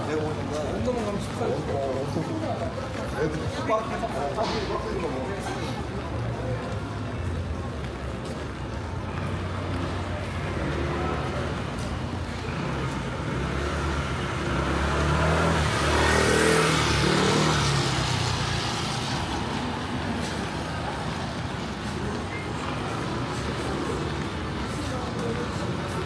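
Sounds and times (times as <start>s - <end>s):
street noise: 0.0s - 26.0s
vehicle passing on wet street: 0.0s - 26.0s.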